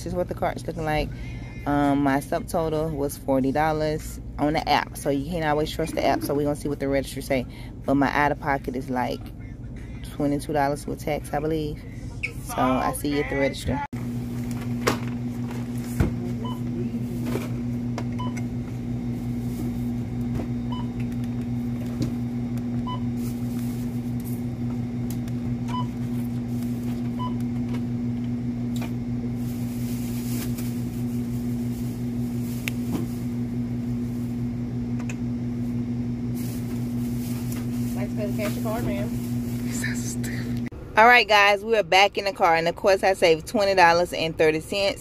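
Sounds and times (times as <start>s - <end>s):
low electrical hum: 0.0s - 45.0s.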